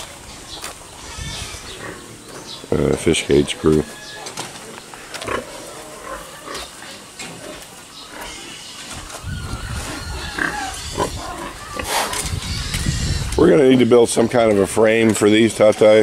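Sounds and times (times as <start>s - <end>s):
pig crying out: 1.0s - 2.0s, 8.2s - 13.4s
pigs grunting: 1.0s - 15.1s.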